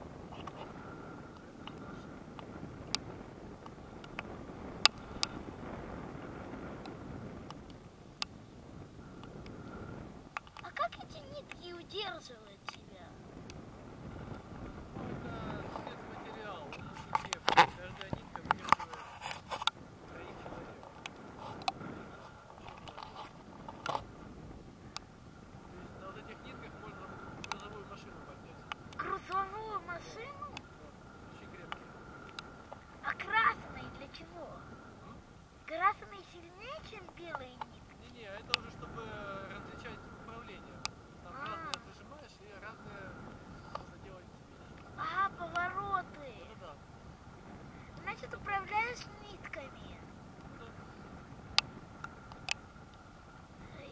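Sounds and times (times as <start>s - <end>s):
wind rushing over microphone: 0.0s - 53.9s
faint voices: 14.1s - 51.5s.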